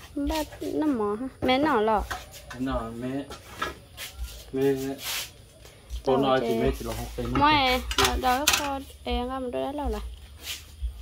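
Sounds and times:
person talking: 0:06.1 - 0:10.0.

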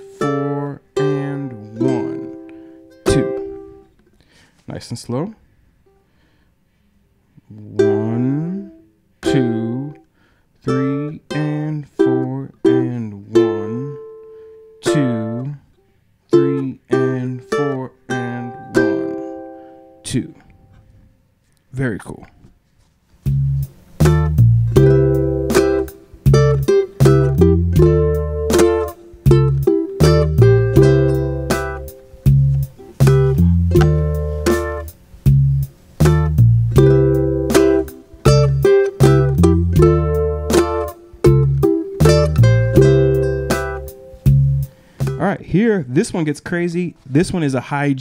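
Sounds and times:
ukulele playing soul fill: 0:00.0 - 0:03.9, 0:07.4 - 0:15.6, 0:16.3 - 0:20.0, 0:23.3 - 0:45.2
backing track with bass line: 0:03.1 - 0:03.8, 0:23.2 - 0:48.0.

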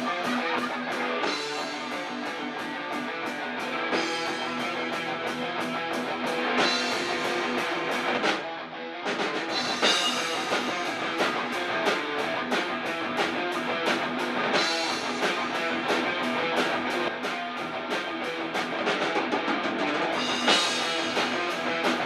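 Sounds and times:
drum kit fast beat: 0:00.0 - 0:08.5, 0:09.1 - 0:22.0
bass guitar: 0:00.0 - 0:22.0
electric guitars: 0:00.0 - 0:22.0.

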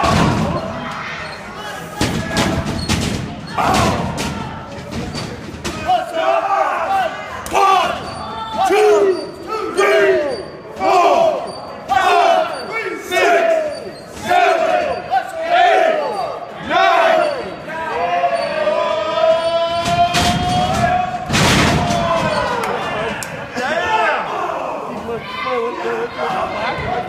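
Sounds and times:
crowd shouting: 0:00.0 - 0:02.8, 0:03.4 - 0:04.7, 0:05.7 - 0:27.0
bodies crashing onto ring: 0:19.9 - 0:22.6.

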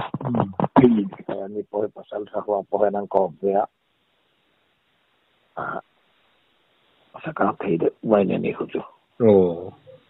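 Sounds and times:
short grunt-like voice: 0:00.0 - 0:01.4.

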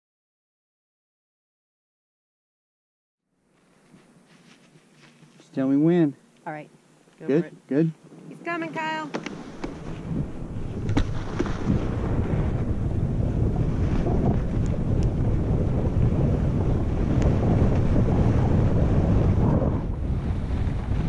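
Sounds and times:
wind buffeting microphone: 0:08.0 - 0:21.0.

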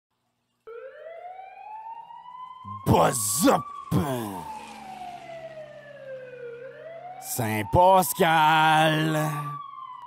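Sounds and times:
siren rising in pitch: 0:00.6 - 0:10.0.

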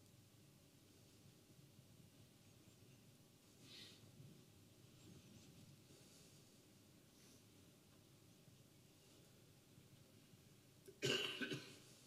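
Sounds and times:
person coughing: 0:11.0 - 0:11.8.

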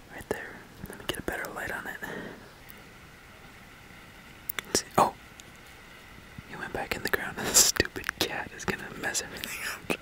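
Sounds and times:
man whispering: 0:00.0 - 0:02.4, 0:04.6 - 0:05.2, 0:06.5 - 0:10.0.

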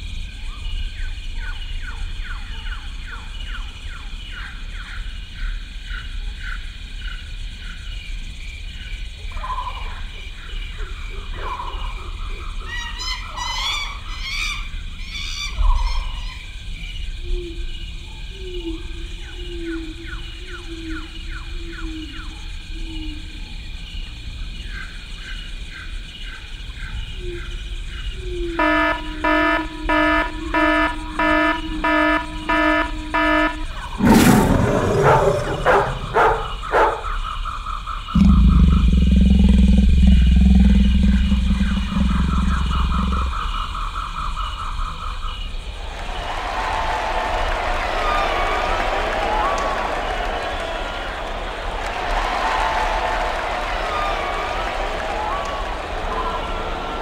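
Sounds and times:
regular pulsing sounds: 0:28.6 - 0:37.0, 0:38.2 - 0:44.1
loud low rumble: 0:29.0 - 0:36.7, 0:38.2 - 0:43.8.

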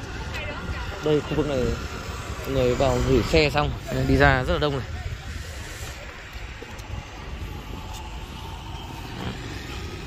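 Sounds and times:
motor vehicle rumble: 0:00.0 - 0:10.0.

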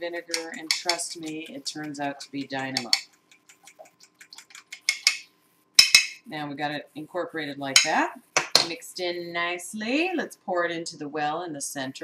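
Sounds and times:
fork beating eggs in glass bowl: 0:00.3 - 0:05.2.

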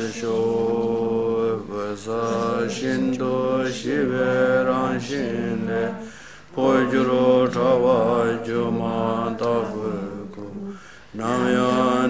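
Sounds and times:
man chanting prayers: 0:00.0 - 0:12.0.

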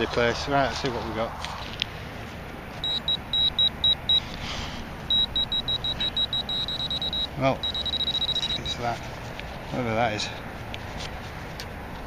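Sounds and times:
pinpointer beeping: 0:02.8 - 0:04.3, 0:05.1 - 0:08.8.

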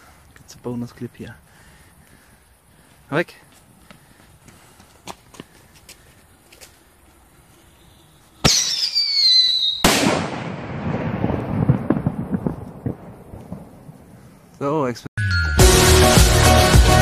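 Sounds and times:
firework whistling: 0:08.4 - 0:10.3
distant firework pops: 0:08.4 - 0:14.0
firework bang with crackling echo: 0:08.4 - 0:14.0.

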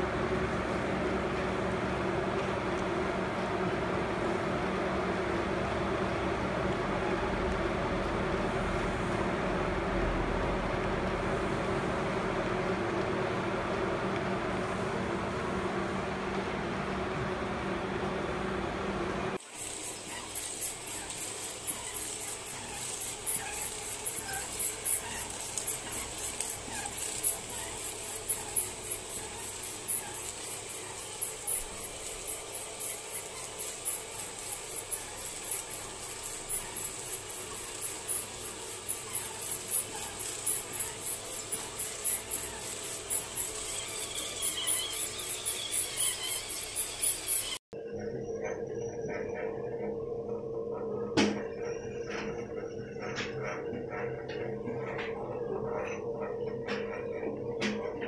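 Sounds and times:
machine rhythmic squeaking: 0:19.4 - 0:58.0.

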